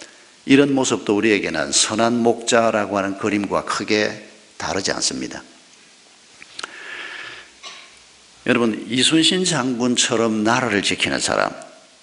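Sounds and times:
mouth click: 6.4 - 6.8
man breathing in through nose: 6.6 - 7.6.

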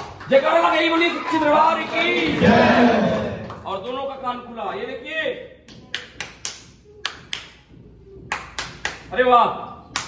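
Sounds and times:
sharp finger snaps: 5.7 - 7.6.

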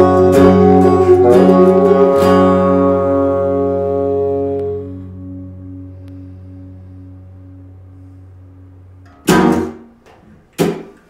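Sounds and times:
low faint steady tone: 0.0 - 9.4
guitar chord ringing out: 0.0 - 10.0.

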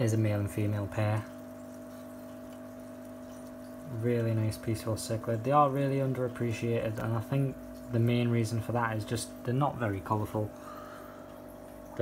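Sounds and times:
electrical hum: 0.0 - 12.0
water trickling: 0.0 - 12.0.

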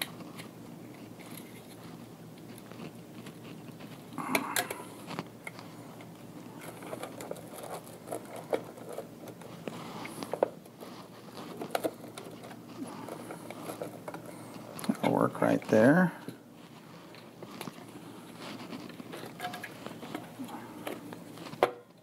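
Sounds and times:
crinkling clatter: 0.0 - 22.0
wires rustling: 0.0 - 22.0.

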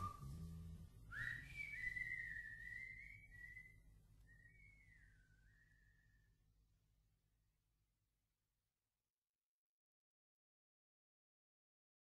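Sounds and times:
faint wavering whistling: 0.0 - 0.5, 1.1 - 6.4.

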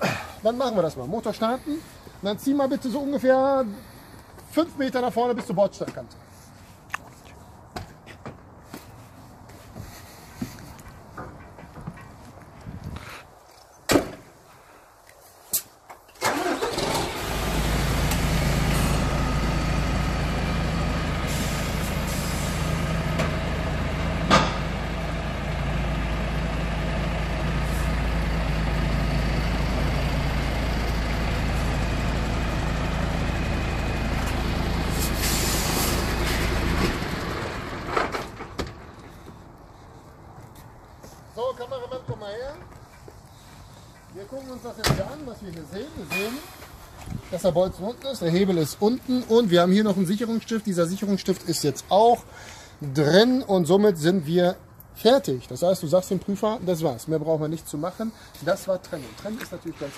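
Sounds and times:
diesel truck engine: 16.2 - 40.2.

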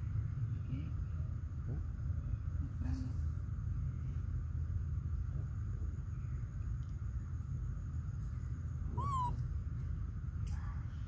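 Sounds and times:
monkey coo call: 8.9 - 9.4.

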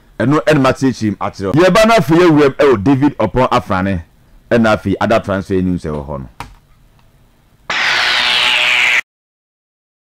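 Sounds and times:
loud rushing hiss falling in pitch: 7.7 - 9.0.

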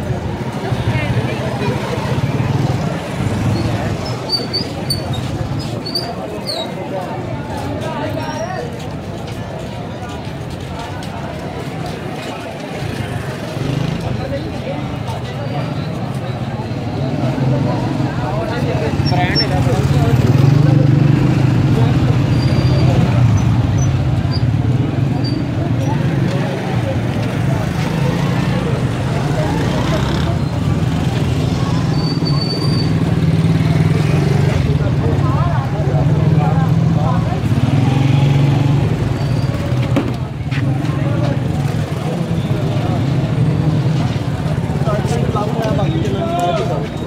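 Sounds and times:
many people talking: 0.0 - 47.0
motorcycle engines: 0.0 - 47.0.

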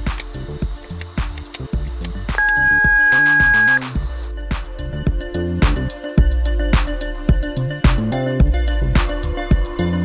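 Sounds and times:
music with steady beat: 0.0 - 10.0
keypad electronic beep: 2.4 - 3.8.

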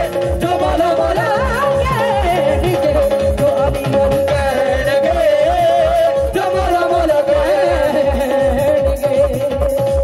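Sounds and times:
woman singing: 0.0 - 9.5
hand drum beat: 0.0 - 10.0.

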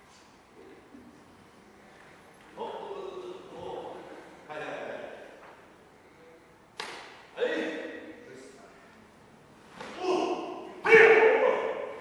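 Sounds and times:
hand slapping a uniform: 6.8 - 7.2.

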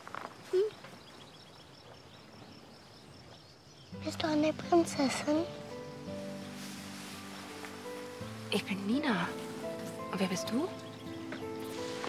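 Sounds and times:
distant birds chirping: 0.0 - 12.0
soft hiss: 4.0 - 12.0.

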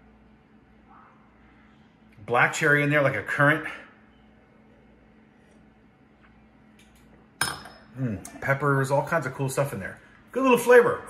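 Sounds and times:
wine glass clinking down: 7.4 - 7.9.

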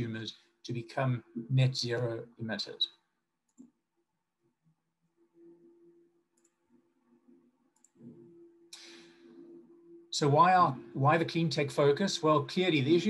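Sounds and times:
faint clicks: 6.4 - 6.6, 7.7 - 9.0
soft breath: 8.7 - 9.6.

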